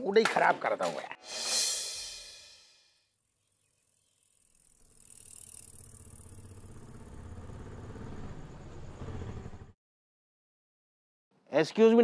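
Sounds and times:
bicycle rattling on rough lane: 3.8s - 9.7s.

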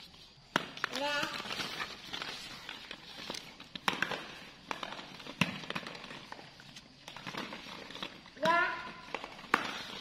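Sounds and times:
plastic balls clattering: 0.5s - 10.0s.

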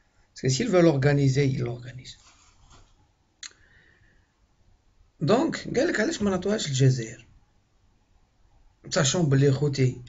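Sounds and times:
man talking: 0.4s - 2.3s, 5.2s - 7.3s, 8.8s - 10.0s.

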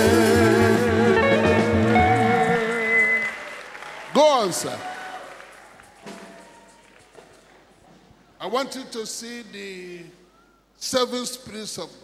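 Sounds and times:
congregation applause: 0.0s - 7.7s.

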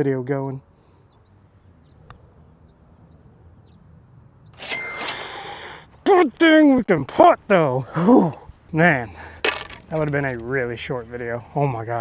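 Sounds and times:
rush of breathy noise: 5.0s - 5.9s.

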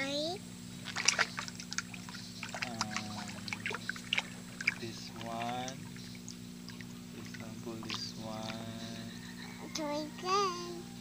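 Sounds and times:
steady low hum: 0.0s - 11.0s
water splashes and drips: 0.8s - 8.6s.

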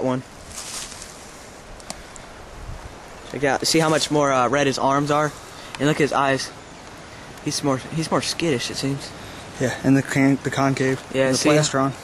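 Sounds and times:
wind on microphone: 1.7s - 3.2s.

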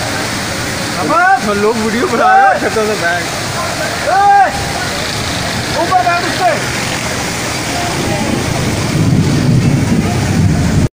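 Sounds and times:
floodwater flowing: 0.0s - 10.9s
heavy rain hissing: 0.0s - 10.9s.

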